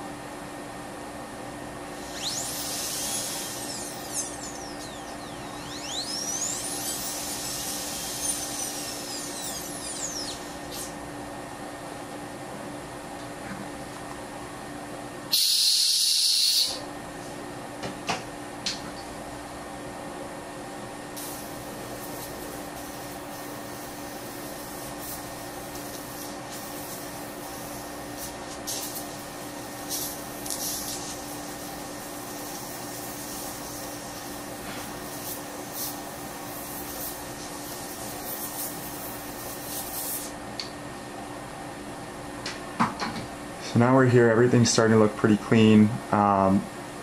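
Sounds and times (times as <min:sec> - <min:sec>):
steady background hum: 0:00.0 - 0:47.0.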